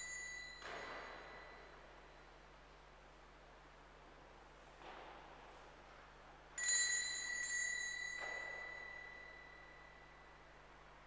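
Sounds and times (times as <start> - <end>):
altar bell ring: 0.0 - 1.8, 6.6 - 10.6.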